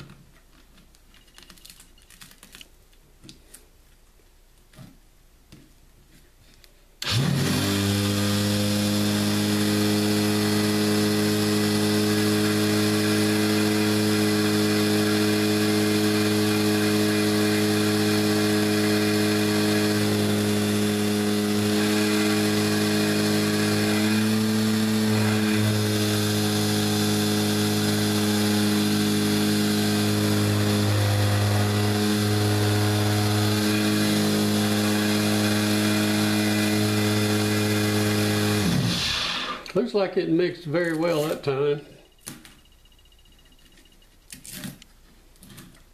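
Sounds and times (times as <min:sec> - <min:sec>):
palm sander buzzing: 0:07.0 - 0:39.8.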